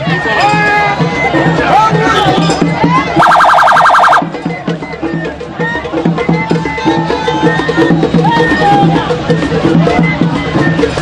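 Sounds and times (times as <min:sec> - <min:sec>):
music with drum beat: 0:00.0 - 0:11.0
electronic siren warbling: 0:03.2 - 0:04.3.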